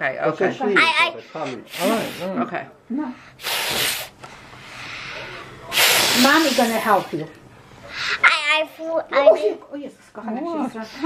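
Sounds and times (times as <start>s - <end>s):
child blowing out candles: 3.4s - 4.1s, 5.7s - 6.8s.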